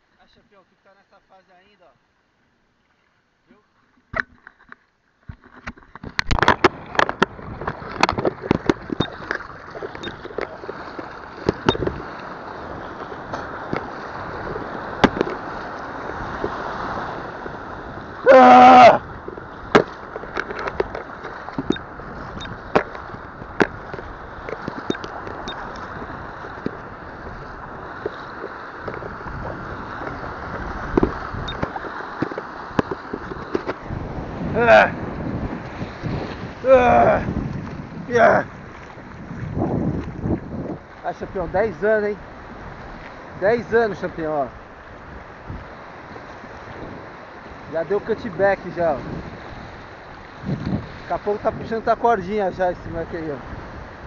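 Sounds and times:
water splashing around camera: 2.8s - 54.0s
water striking camera: 4.1s - 12.0s, 15.0s - 15.5s, 19.7s - 26.8s, 28.8s - 33.9s
person shouting: 18.2s - 19.0s, 34.6s - 34.9s, 36.6s - 37.3s.

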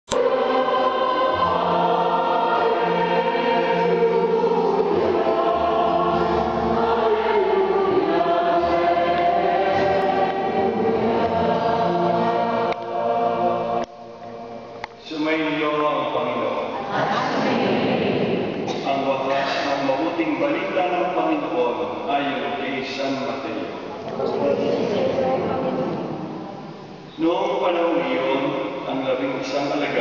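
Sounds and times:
low accompaniment: 0.1s - 29.2s
church choir singing: 0.1s - 30.0s.

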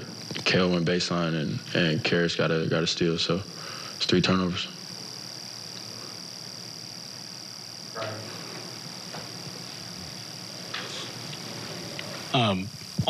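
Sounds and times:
high-pitched whine: 0.0s - 13.0s
low electrical hum: 0.0s - 13.0s.

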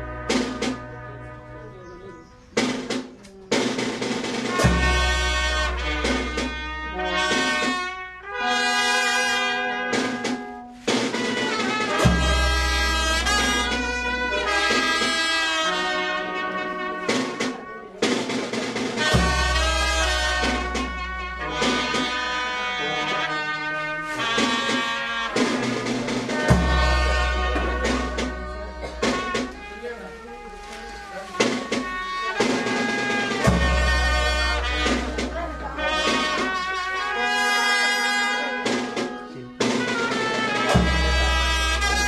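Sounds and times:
brass band playing: 0.0s - 42.0s.

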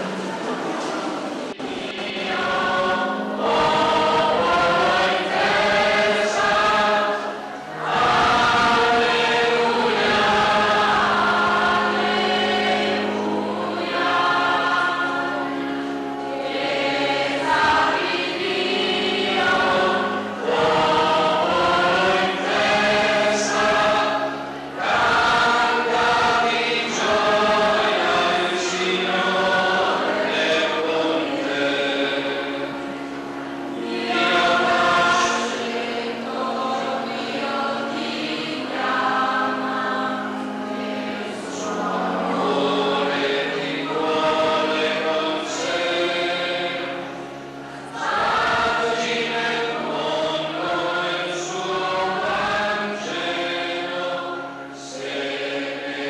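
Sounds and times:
choir singing chant: 0.0s - 56.0s.

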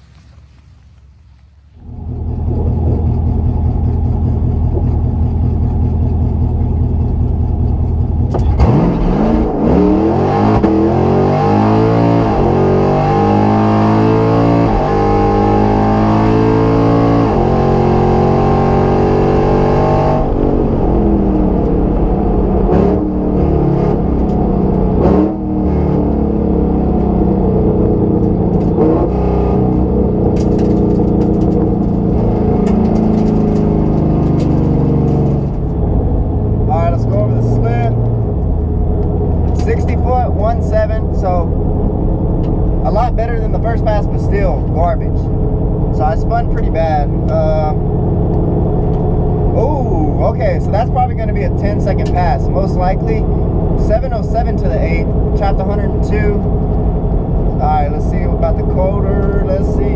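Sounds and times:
tires spinning: 0.0s - 19.6s, 20.2s - 59.9s
drag car engine revving: 1.7s - 59.9s.

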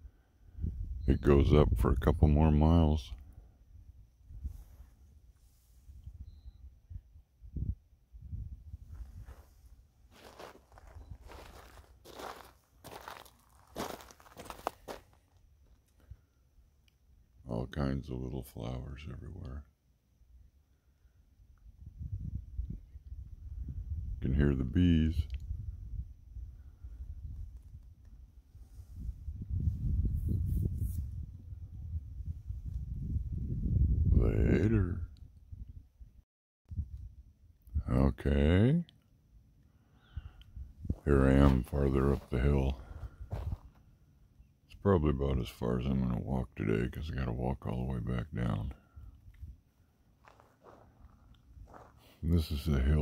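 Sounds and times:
wind rumbling on microphone: 0.0s - 15.0s, 21.5s - 38.2s, 40.0s - 43.8s, 50.3s - 53.0s
footsteps crunching on gravel: 9.0s - 15.4s, 40.9s - 43.8s, 50.2s - 52.3s.

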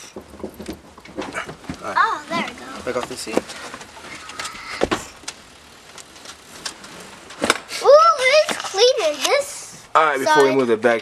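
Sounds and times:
child's high voice: 1.8s - 2.8s, 7.8s - 10.6s.

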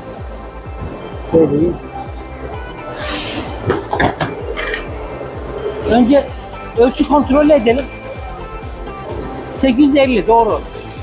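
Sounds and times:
plastic sheet sliding hiss: 2.9s - 3.7s.

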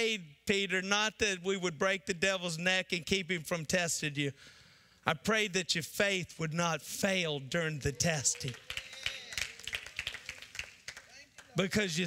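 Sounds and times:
people clapping lightly: 7.8s - 12.0s.

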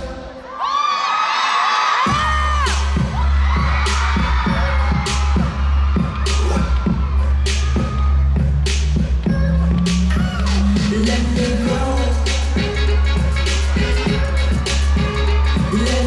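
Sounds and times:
audience screaming and cheering: 0.0s - 16.0s
bass-driven electronic beat: 2.1s - 16.0s.

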